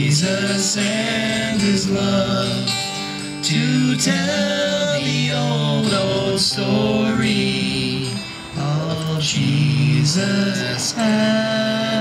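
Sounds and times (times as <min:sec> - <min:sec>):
men singing together: 0:00.0 - 0:12.0
strummed acoustic guitars: 0:00.0 - 0:12.0.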